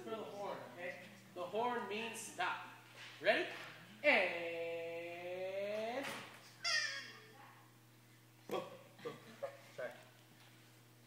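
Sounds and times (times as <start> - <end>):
child squealing: 6.6 - 7.3.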